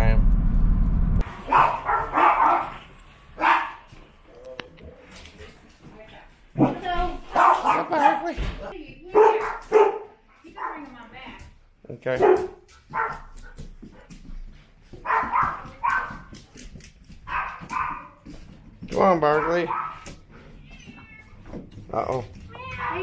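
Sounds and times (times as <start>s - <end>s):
dogs barking and yipping: 1.2s - 5.5s, 6.6s - 8.3s, 9.1s - 10.9s, 12.2s - 14.1s, 14.9s - 18.6s, 19.2s - 20.3s.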